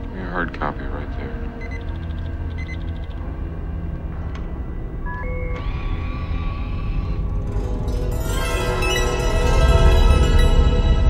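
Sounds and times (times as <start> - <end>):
dark low music drone: 0.0 - 11.0
held electronic tones: 1.6 - 3.2
short electronic beeps: 1.6 - 3.2.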